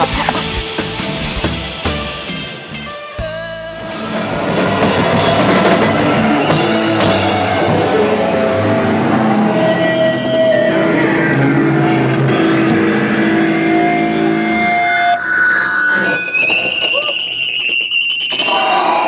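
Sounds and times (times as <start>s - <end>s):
rock band playing: 0.0s - 15.2s
sustained high guitar tones: 0.0s - 19.0s.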